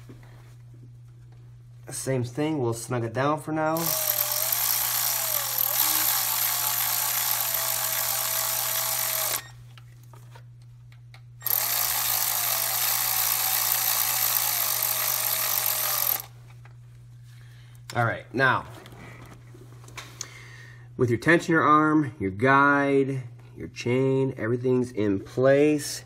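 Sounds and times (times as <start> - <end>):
cordless ratchet motor whine: 3.8 - 9.6, 11.4 - 16.3.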